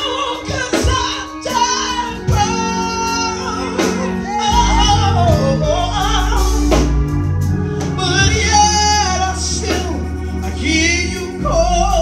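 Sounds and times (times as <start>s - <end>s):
live band accompaniment: 0.0s - 12.0s
woman singing gospel: 0.0s - 12.0s
deep bass: 2.1s - 12.0s.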